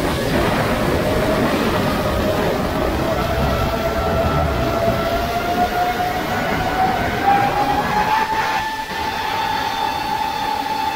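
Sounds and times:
wind rushing: 0.0s - 10.9s.

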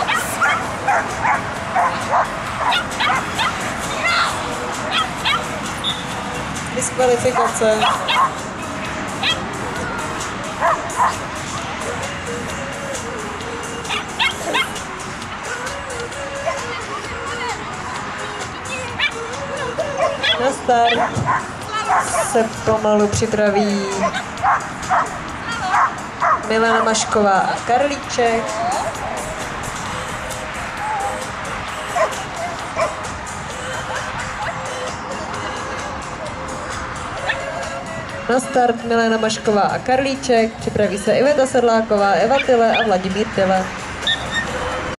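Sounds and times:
dog barking: 0.0s - 3.6s, 4.9s - 5.5s, 7.4s - 8.4s, 9.2s - 9.4s, 10.6s - 11.2s, 13.9s - 14.8s, 19.0s - 19.2s, 19.8s - 22.4s, 24.0s - 26.9s, 31.9s - 33.0s, 42.3s - 43.0s, 44.0s - 44.5s
background music with beat: 0.0s - 45.0s.

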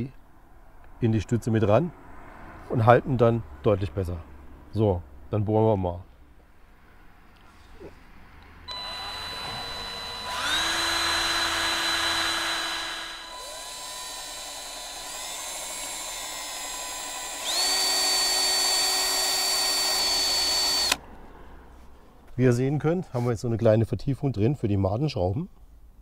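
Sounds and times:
cordless drill boring metal: 8.7s - 21.0s.

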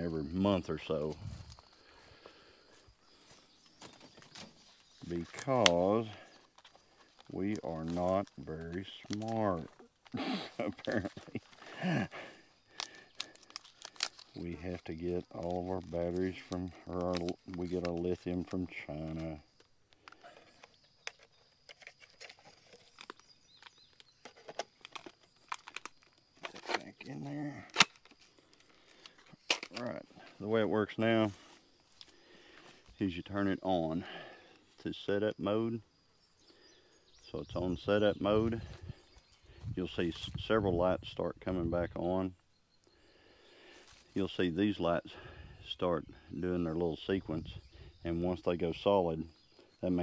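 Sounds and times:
person speaking: 0.0s - 1.5s, 5.0s - 6.4s, 7.3s - 12.3s, 14.3s - 19.5s, 26.6s - 27.8s.

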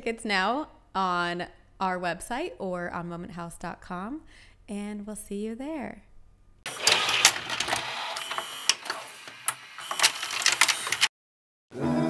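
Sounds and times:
noisy clattering with sharp clicks: 6.7s - 11.1s
music: 11.7s - 12.0s.

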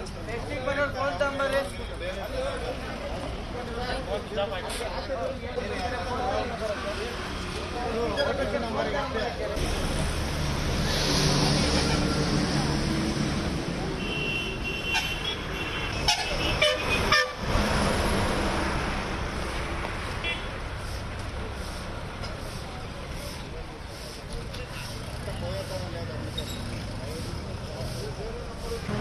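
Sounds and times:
road traffic noise: 0.0s - 29.0s
vehicle horn honking: 14.0s - 17.4s.

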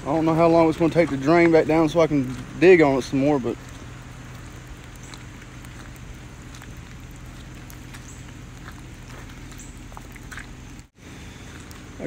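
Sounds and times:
low hum: 0.0s - 12.0s
rainwater trickling: 0.0s - 12.0s
small water drips: 0.0s - 12.0s.

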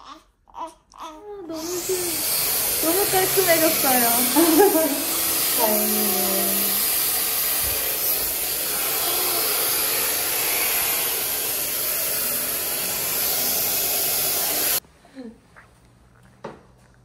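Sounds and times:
hair dryer blowing: 1.5s - 14.8s.

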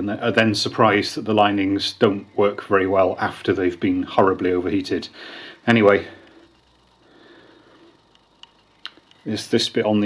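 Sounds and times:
faint metallic clicks: 7.9s - 9.3s.

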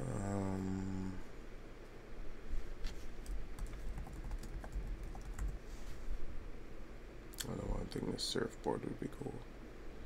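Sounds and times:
computer keyboard typing: 3.2s - 5.6s.

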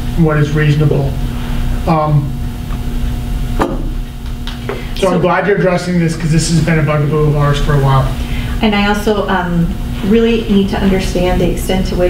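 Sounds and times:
low room rumble and hum: 0.0s - 12.0s.

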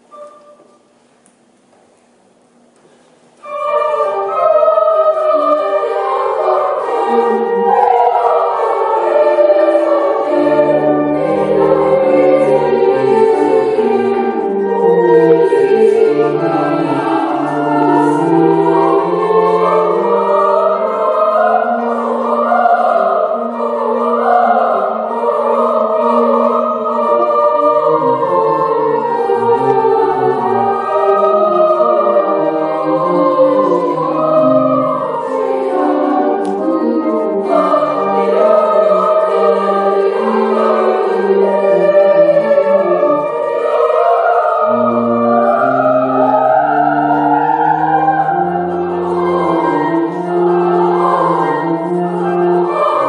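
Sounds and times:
children's choir singing: 0.0s - 1.0s, 3.4s - 53.0s.

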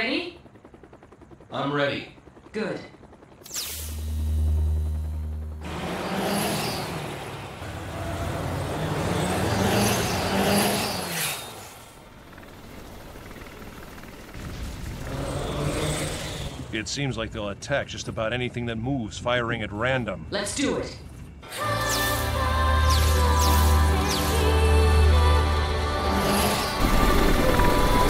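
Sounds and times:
low hum: 0.0s - 28.0s
engine-like noise: 3.3s - 19.7s, 21.4s - 28.0s.

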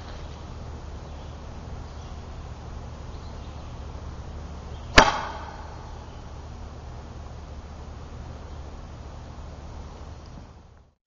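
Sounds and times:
sharp pneumatic pop: 4.9s - 5.8s.

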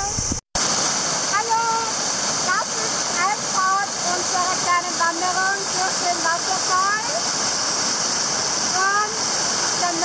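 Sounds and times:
waterfall rushing over rocks: 0.0s - 10.0s.

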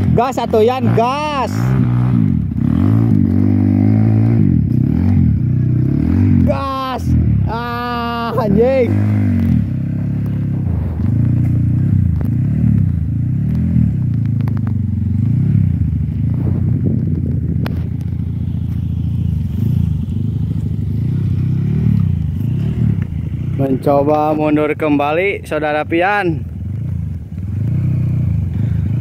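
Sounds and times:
trail bike engine revving: 0.0s - 29.0s.

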